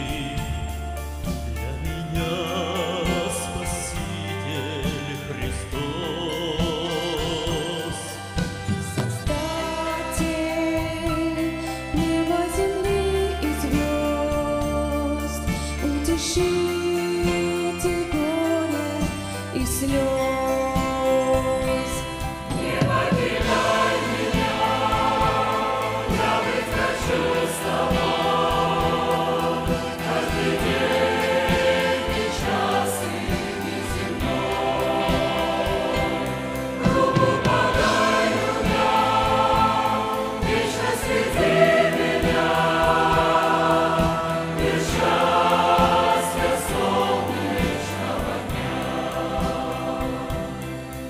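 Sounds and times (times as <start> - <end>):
choir singing a hymn: 1.6 - 51.0.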